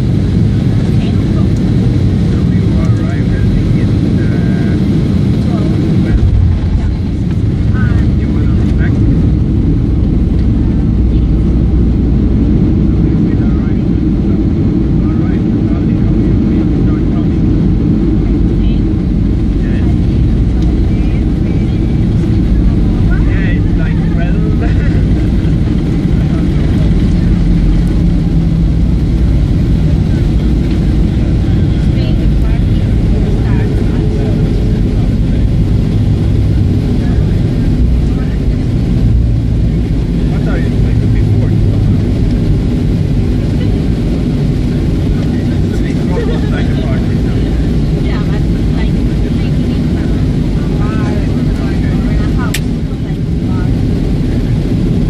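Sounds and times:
airliner engines rumbling in cabin: 0.0s - 55.0s.

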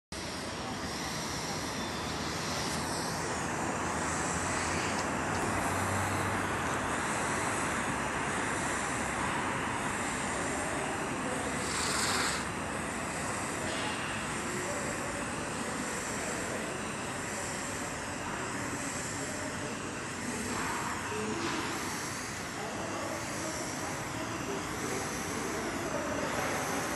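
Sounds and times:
foam spray gun noise: 0.2s - 26.9s
spray hiss: 0.2s - 26.9s.

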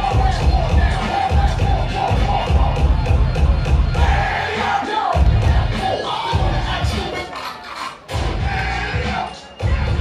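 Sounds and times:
audience cheering and shouting: 0.0s - 10.0s
dance music with heavy bass: 0.0s - 10.0s.

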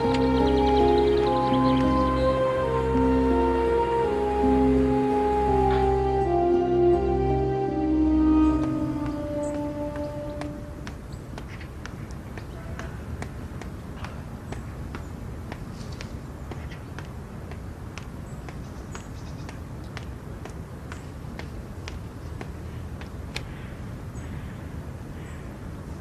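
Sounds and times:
soft music chord: 0.0s - 11.1s
light ticks and taps: 8.6s - 23.5s.

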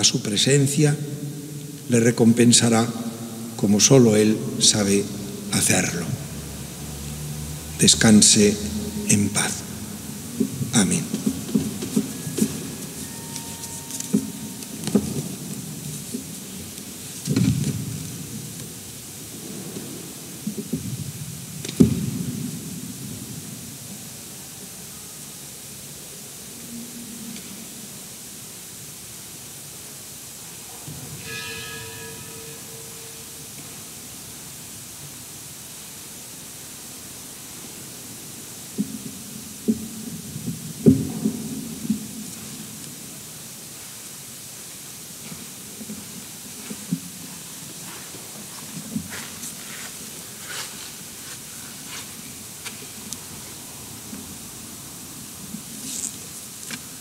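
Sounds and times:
brief steady tone: 12.1s - 15.3s
low shuffling: 45.2s - 53.6s.

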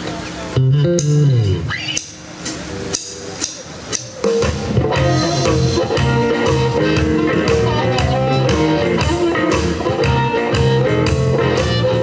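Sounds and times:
drum kit ticks: 0.6s - 12.0s.

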